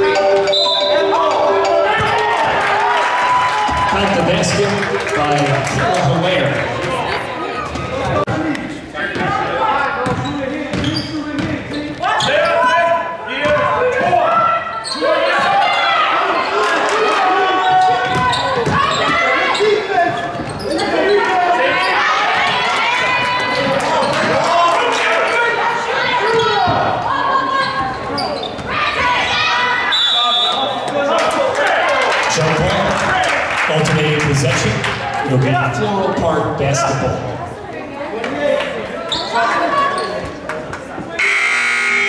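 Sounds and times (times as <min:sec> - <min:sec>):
voices shouting: 0:00.0 - 0:04.2, 0:12.0 - 0:32.2
referee's whistle blast: 0:00.5 - 0:01.1, 0:29.9 - 0:30.8, 0:41.2 - 0:42.0.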